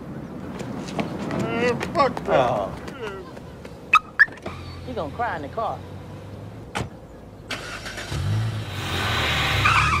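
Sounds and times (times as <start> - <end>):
car engine starting and pulling away: 5.8 - 10.0.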